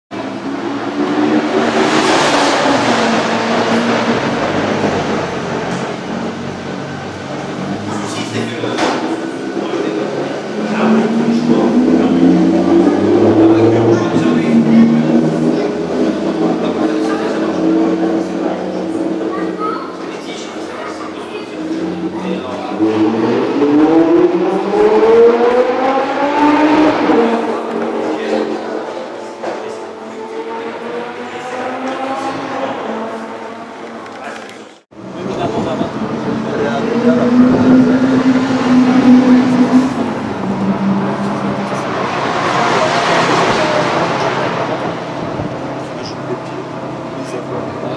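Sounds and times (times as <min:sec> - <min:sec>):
car engine accelerating: 0:00.1 - 0:47.9
rush of noise: 0:00.2 - 0:47.9.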